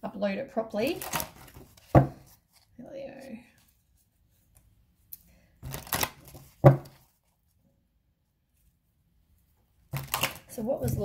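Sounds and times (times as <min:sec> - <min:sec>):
cards rustling: 0:00.9 - 0:04.8, 0:05.6 - 0:07.4, 0:09.9 - 0:11.0
person speaking: 0:10.5 - 0:11.0.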